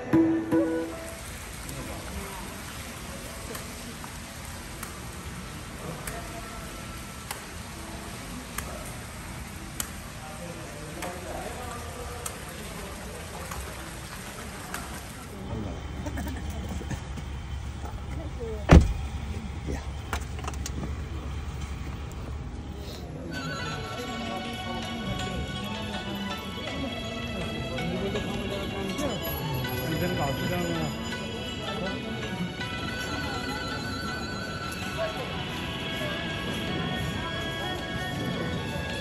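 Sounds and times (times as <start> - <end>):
falling water hiss: 0.8 - 15.4
car door slamming: 18.6 - 19.1.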